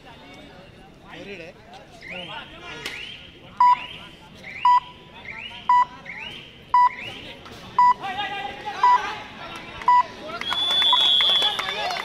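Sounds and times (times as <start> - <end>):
electronic timer beeping: 3.6 - 3.8, 4.6 - 5.0, 5.7 - 5.9, 6.8 - 7.0.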